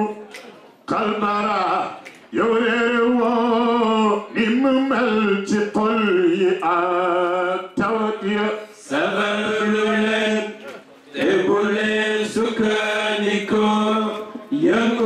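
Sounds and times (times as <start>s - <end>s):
man chanting a religious song: 0.9s - 10.6s.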